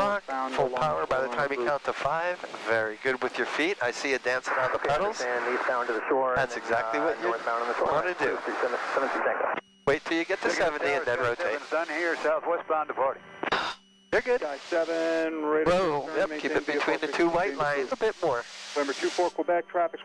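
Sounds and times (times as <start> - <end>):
faint steady hum: 0.0 - 20.0
voices talking over headset audio: 0.0 - 20.0.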